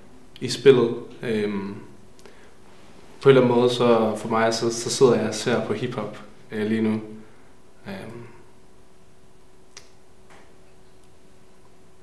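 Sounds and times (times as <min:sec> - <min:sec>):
faint steady hum: 0:00.0 - 0:12.0
room hiss: 0:00.0 - 0:12.0.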